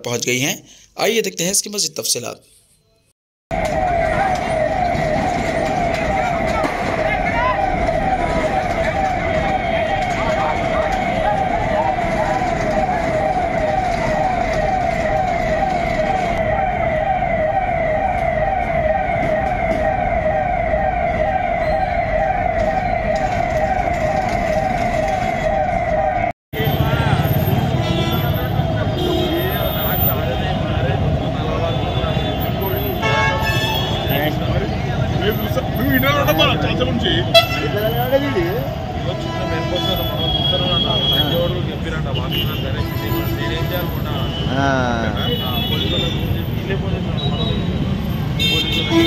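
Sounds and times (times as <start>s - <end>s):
street noise: 0.0s - 49.0s
fire engine siren wailing: 3.5s - 47.2s
voices: 3.6s - 14.6s, 26.6s - 47.8s.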